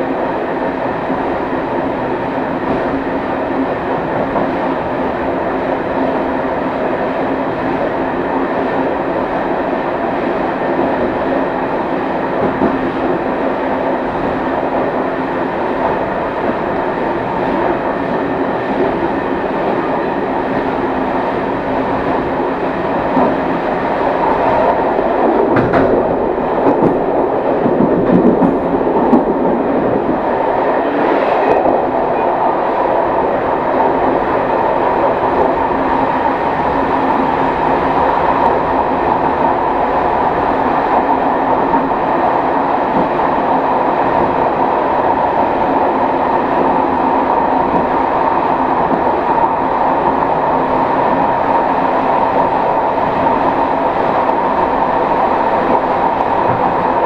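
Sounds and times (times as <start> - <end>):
train wheels running on track: 0.0 - 57.0.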